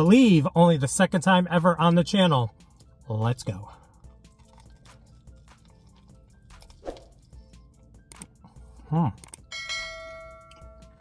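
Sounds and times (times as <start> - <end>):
chewing with mouth clicks: 4.0 - 8.5.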